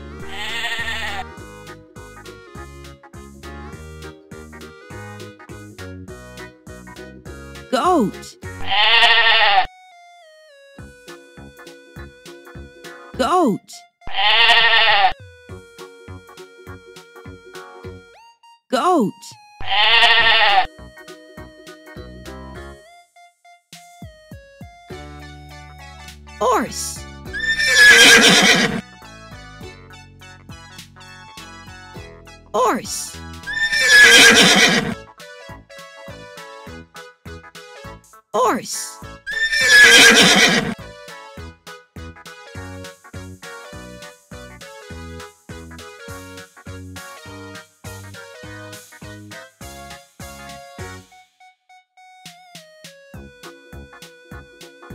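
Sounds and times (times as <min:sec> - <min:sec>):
light background music: 0:00.0 - 0:51.4
goat bleating: 0:00.2 - 0:01.2, 0:08.6 - 0:09.7, 0:14.1 - 0:15.2, 0:19.6 - 0:20.7, 0:27.4 - 0:28.8, 0:33.5 - 0:35.0, 0:39.3 - 0:40.8
horse whinnying: 0:00.2 - 0:01.2, 0:08.6 - 0:09.7, 0:14.1 - 0:15.2, 0:19.6 - 0:20.7, 0:27.4 - 0:28.8, 0:33.5 - 0:35.0, 0:39.3 - 0:40.8.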